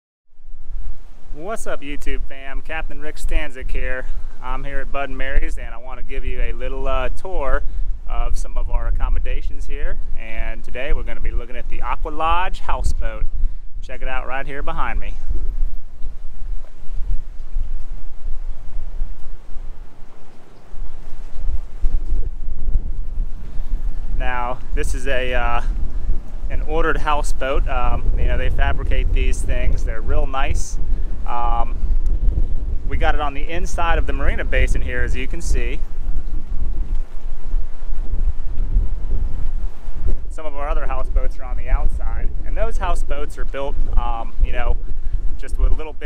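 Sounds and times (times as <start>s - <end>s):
gusty wind buffeting microphone: 0.3s - 46.0s.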